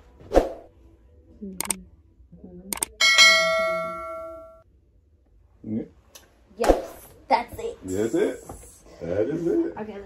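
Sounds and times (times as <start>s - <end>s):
bright bell ding: 3.0s - 4.6s.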